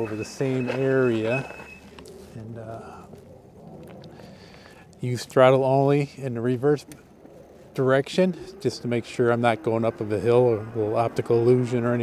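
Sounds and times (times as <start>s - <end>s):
bike rolling on pavement: 0.0s - 12.0s.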